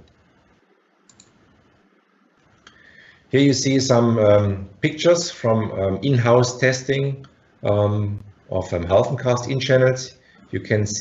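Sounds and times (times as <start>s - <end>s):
small click: 1.1s - 1.4s.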